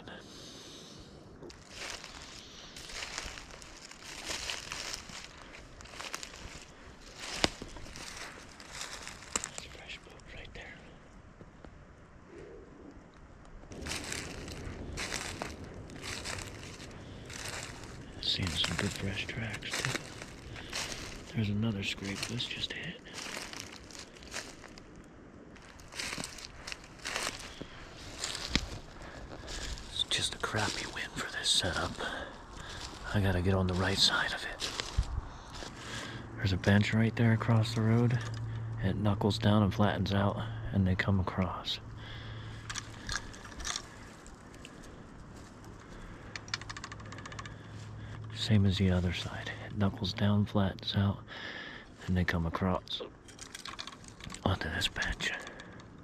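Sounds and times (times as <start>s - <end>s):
footsteps crunching dry leaves: 1.5s - 9.9s, 13.7s - 25.0s, 25.6s - 38.5s, 42.0s - 46.1s.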